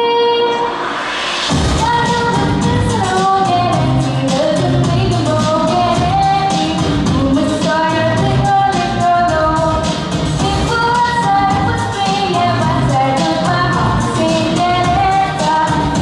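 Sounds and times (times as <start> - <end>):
backing track with steady beat: 0.0 - 16.0
girl singing pop song: 0.0 - 16.0.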